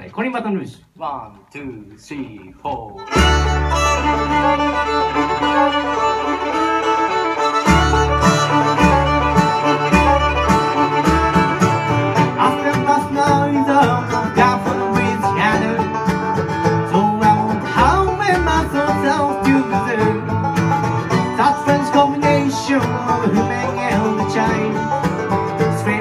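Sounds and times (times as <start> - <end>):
bass: 0.0 - 26.0
acoustic guitar: 1.4 - 26.0
mandolin: 2.7 - 26.0
banjo: 3.0 - 26.0.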